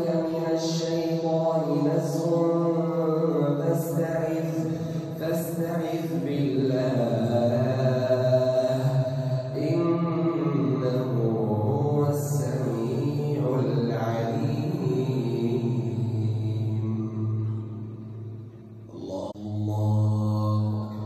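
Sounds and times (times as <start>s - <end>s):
man reciting melodically: 0.0s - 21.0s.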